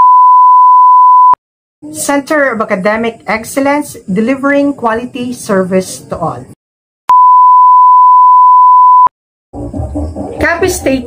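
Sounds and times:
steady electronic beep: 0.0 - 1.4, 7.1 - 9.1.

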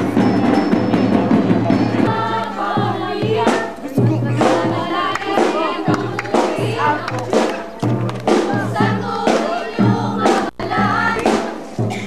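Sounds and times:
group of voices singing: 0.0 - 12.0.

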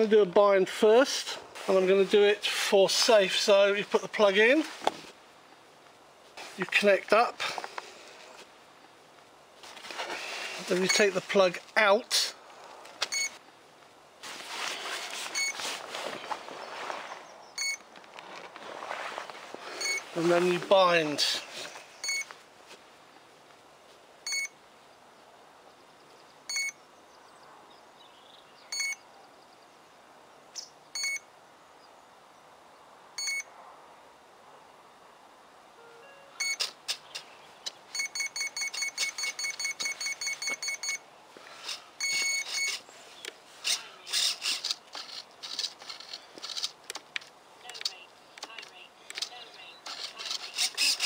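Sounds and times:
high electronic beeps: 35.8 - 36.7, 37.9 - 41.0, 42.0 - 42.8
clicks: 44.5 - 51.0.

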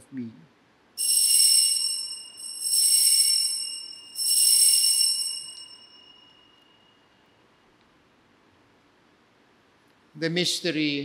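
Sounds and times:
altar bell ringing: 1.0 - 7.3.

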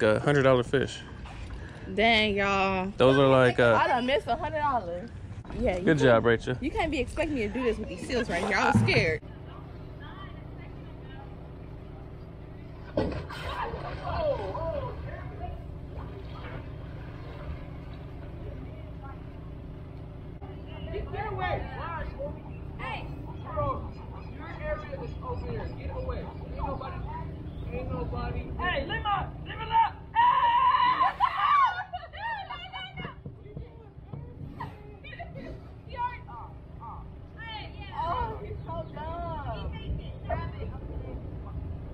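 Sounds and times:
distant voices talking and calling: 0.0 - 41.9
low background rumble: 0.0 - 41.9.

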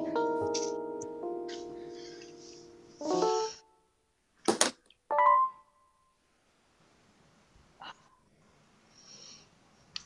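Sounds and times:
bright keyboard chord: 0.0 - 3.6, 5.1 - 5.6.

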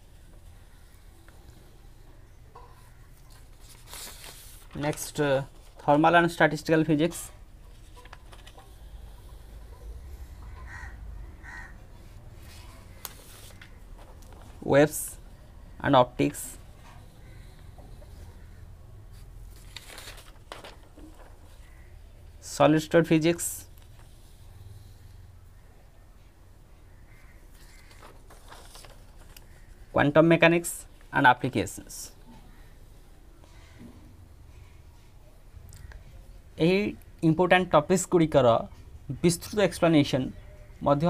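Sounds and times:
low background noise: 0.0 - 41.0
faint bird-like animal call: 8.6 - 13.8, 16.8 - 19.2, 21.5 - 22.4, 24.2 - 28.4, 40.3 - 40.8
short distant calls: 9.3 - 13.9.

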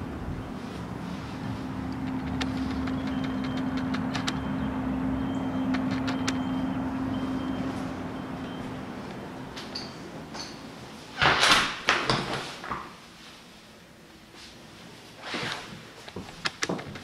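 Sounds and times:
low machine hum: 0.0 - 11.0
sharp clicks: 1.9 - 4.5, 5.7 - 6.5.

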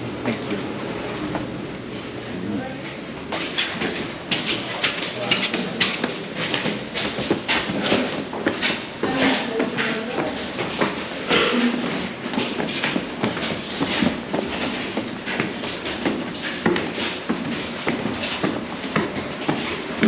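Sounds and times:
footsteps on stairs: 2.8 - 20.0.

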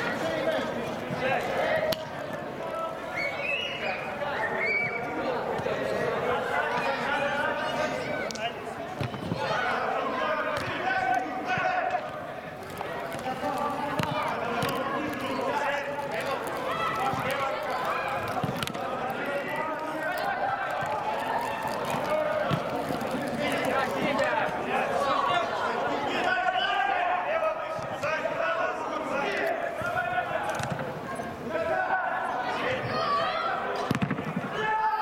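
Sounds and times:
footballers calling: 0.0 - 35.0.

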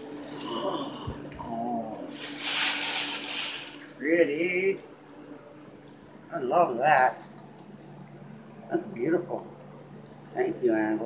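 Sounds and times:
box fan humming: 0.0 - 11.0
tissue paper rustling: 2.1 - 4.5.

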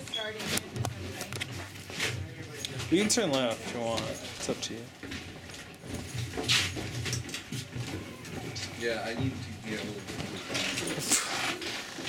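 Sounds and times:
indistinct chatter of people: 0.0 - 12.0.

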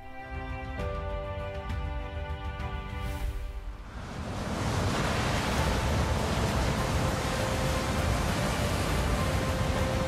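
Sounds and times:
faint sustained music tones: 0.0 - 10.0
wind: 0.0 - 10.0
heavy seas breaking over bow: 3.8 - 10.0.

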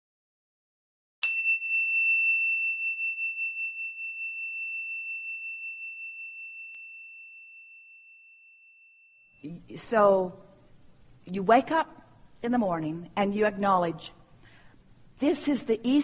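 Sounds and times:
high bell-like chime: 1.2 - 9.4.

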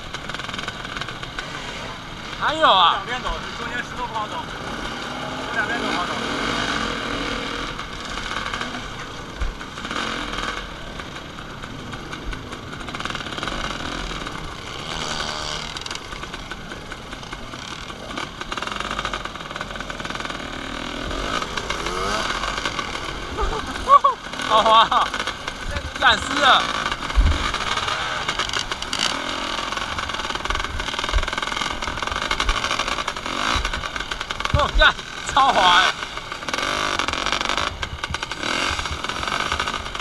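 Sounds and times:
dirt bike engines revving: 0.0 - 40.0.

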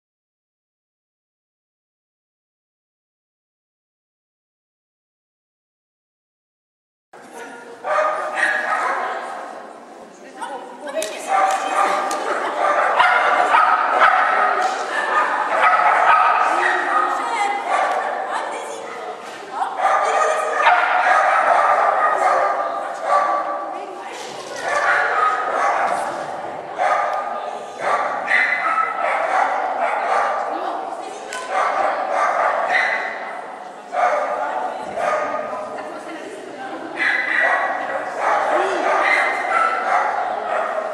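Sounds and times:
people talking: 7.2 - 40.9
dog barking: 7.4 - 9.4, 11.3 - 23.6, 24.6 - 26.2, 26.8 - 30.6, 31.4 - 35.5, 37.0 - 40.9.

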